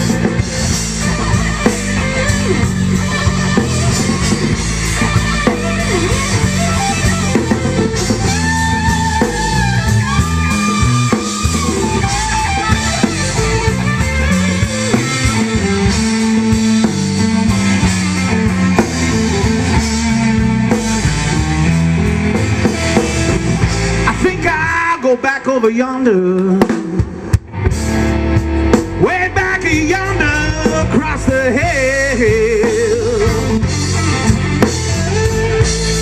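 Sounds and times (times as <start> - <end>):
electric guitar solo: 0.0 - 25.2, 26.1 - 36.0
bass guitar: 0.0 - 36.0
drum kit: 0.0 - 36.0.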